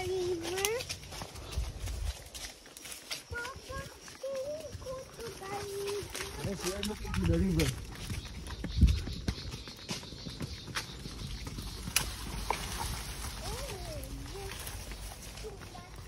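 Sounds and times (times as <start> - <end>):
horse hooves clopping: 0.0 - 16.0
steps in grass: 0.0 - 16.0.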